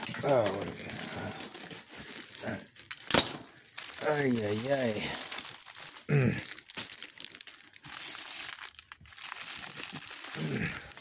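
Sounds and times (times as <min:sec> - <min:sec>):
plastic bags rustling: 0:00.0 - 0:11.0.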